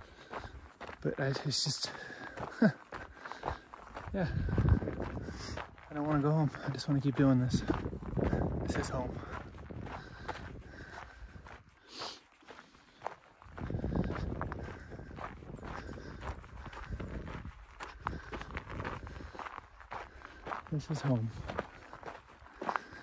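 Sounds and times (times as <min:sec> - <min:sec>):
footsteps on gravel trail: 0:00.0 - 0:23.0.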